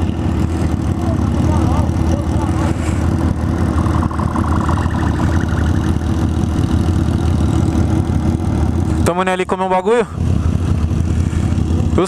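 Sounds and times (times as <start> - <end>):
motorcycle engine rumbling at low revs: 0.0 - 12.0.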